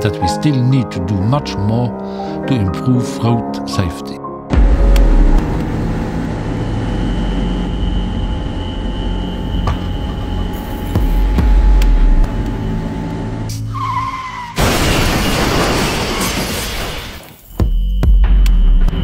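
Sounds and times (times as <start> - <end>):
car engine and road noise: 4.5 - 15.0.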